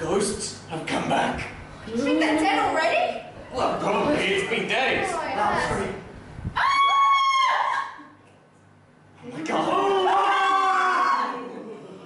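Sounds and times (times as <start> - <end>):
high-pitched human scream: 6.6 - 8.1, 9.6 - 11.4.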